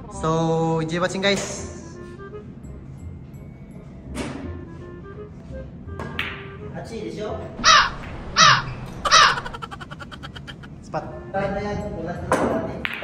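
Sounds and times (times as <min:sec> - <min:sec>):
loud shouts: 0:07.7 - 0:10.7
rapid laughter: 0:08.4 - 0:10.8.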